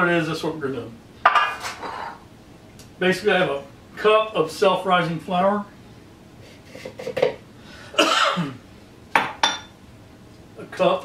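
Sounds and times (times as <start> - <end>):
kitchenware clinking: 1.2 - 2.2, 9.2 - 9.8
sharp ringing glass clinks: 9.4 - 9.8.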